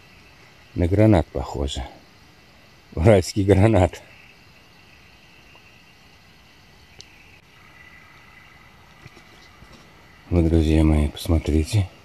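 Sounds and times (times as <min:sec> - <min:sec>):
high-pitched insect trill: 0:00.0 - 0:12.0.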